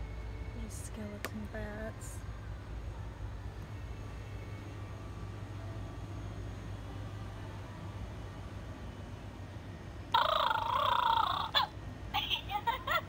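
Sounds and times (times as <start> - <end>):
low store hum: 0.0 - 13.0
toy wavering electronic sound: 10.1 - 13.0.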